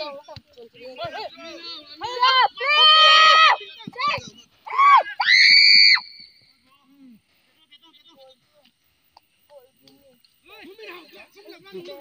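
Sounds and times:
long high-pitched scream: 2.6s - 3.6s, 4.7s - 6.4s.

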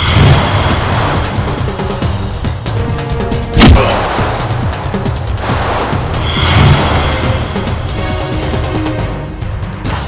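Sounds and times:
action film score with low pulse: 0.0s - 10.0s
rushing whoosh: 3.6s - 7.9s.

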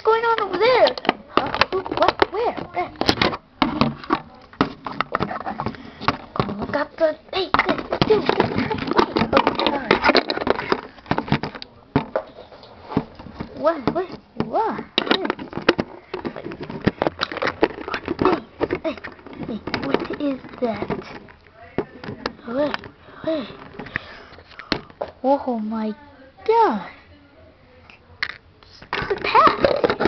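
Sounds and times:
child's voice: 0.0s - 1.0s
handling clicks and knocks: 0.2s - 25.2s, 28.2s - 30.0s.

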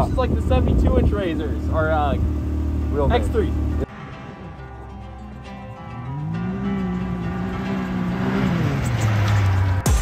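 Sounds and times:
engine revving: 1.3s - 10.0s.

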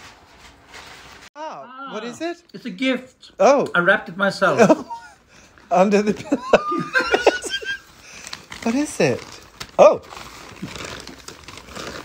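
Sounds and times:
paper wrapping crinkling: 0.0s - 1.3s, 5.4s - 12.0s.

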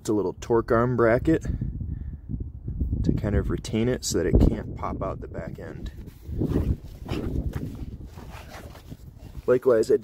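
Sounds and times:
phone microphone handling noise: 5.8s - 9.6s
faint scuffing footsteps: 6.0s - 9.4s.

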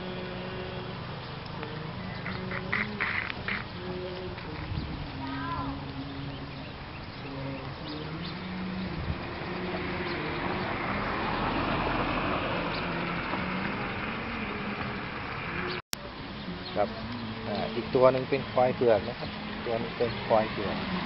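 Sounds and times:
faint distant voices: 1.5s - 21.0s.

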